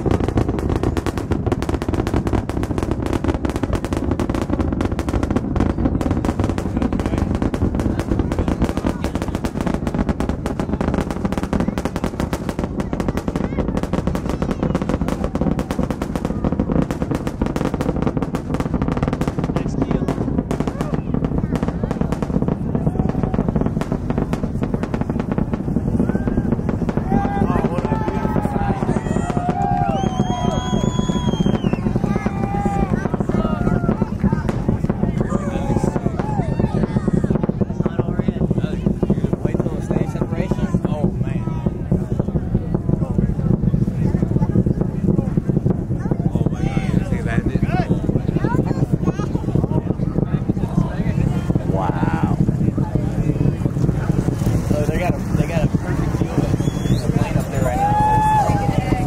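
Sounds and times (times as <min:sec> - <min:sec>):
rocket engine crackle and rumble: 0:00.0 - 0:59.0.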